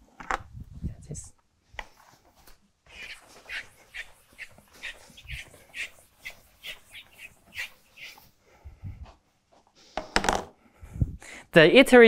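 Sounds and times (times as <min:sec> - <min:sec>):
eraser rasping on blackboard: 0:02.9 - 0:08.3.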